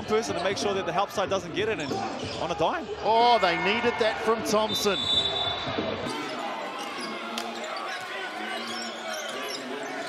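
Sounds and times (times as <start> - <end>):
faint crowd and player voices: 0.0 - 10.0.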